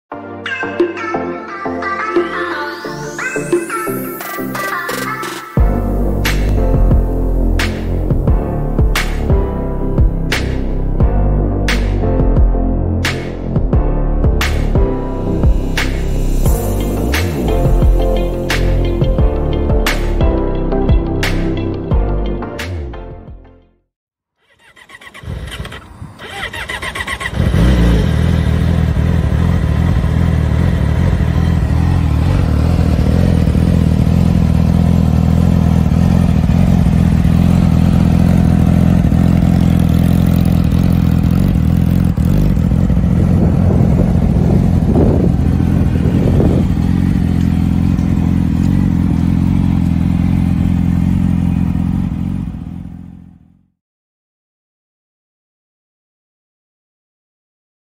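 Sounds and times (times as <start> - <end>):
motorcycle engine cranking: 24.4 - 33.9
motorcycle engine idling: 24.4 - 53.5.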